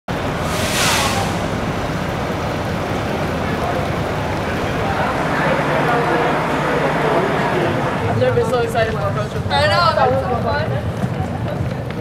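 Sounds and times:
rushing noise of wet street: 0.1 - 12.0
hissing whoosh: 0.2 - 3.3.

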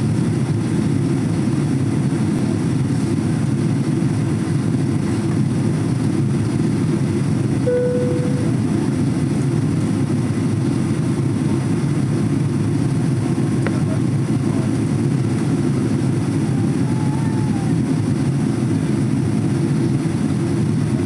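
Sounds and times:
airliner cabin engine roar: 0.0 - 21.0
single steady tone: 7.6 - 8.6.

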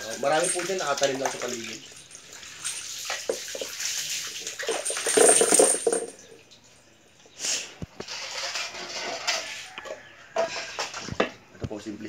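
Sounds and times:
water splashing on dog's coat: 0.0 - 5.1.

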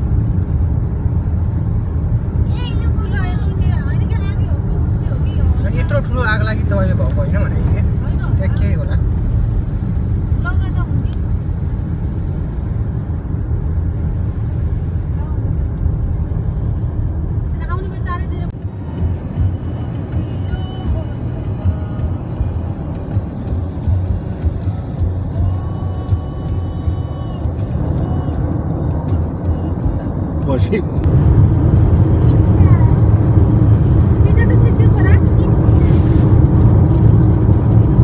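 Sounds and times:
car driving rumble: 0.0 - 38.0.

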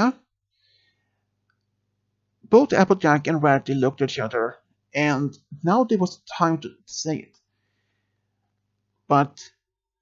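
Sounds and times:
person speaking: 0.0 - 0.3, 2.4 - 7.4, 9.1 - 9.6.

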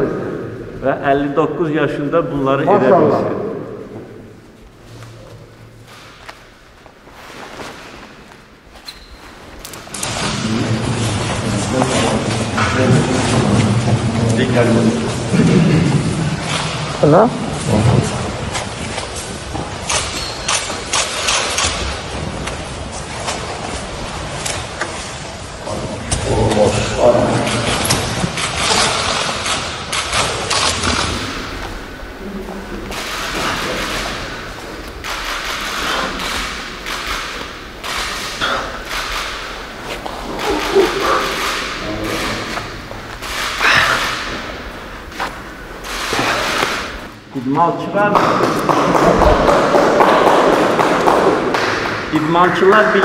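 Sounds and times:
voices: 38.3 - 46.5.

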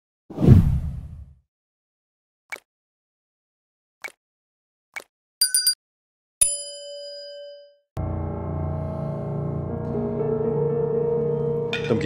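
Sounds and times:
whoosh with heavy low end: 0.4 - 1.3.

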